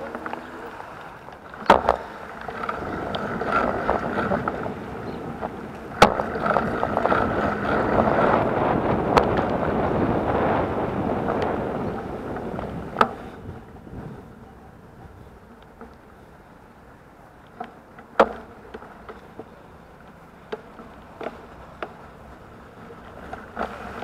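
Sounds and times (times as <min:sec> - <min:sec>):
tyres on asphalt: 0:00.0 - 0:24.0
wind rush: 0:02.8 - 0:15.4.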